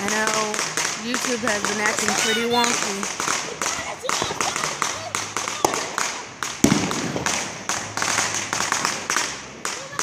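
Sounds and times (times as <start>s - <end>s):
firecrackers popping: 0.0s - 10.0s
loud firework bang: 0.0s - 10.0s.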